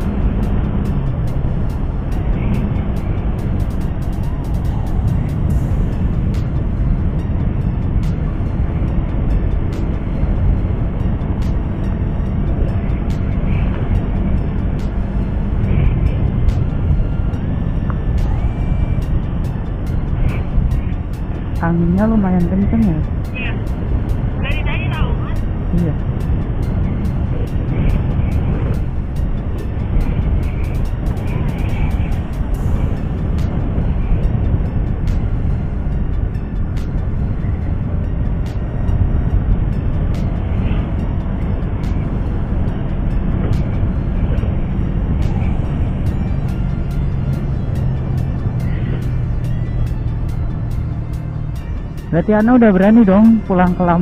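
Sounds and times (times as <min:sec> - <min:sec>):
motorcycle engine running: 0:00.0 - 0:54.0
music with steady beat: 0:00.0 - 0:54.0
steady low hum: 0:00.0 - 0:54.0
wind rushing over microphone: 0:00.0 - 0:54.0.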